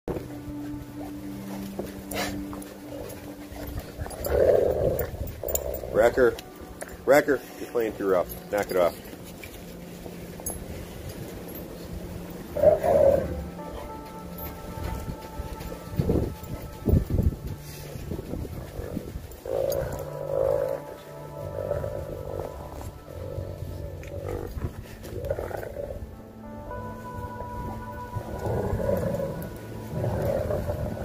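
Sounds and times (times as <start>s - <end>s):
dogs growling: 0.6s - 7.0s, 10.4s - 15.0s, 17.6s - 26.1s, 28.2s - 31.0s.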